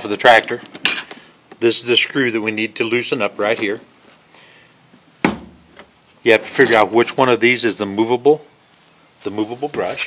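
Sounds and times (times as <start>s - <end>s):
heavy metal part set on bench: 0.4s - 1.2s.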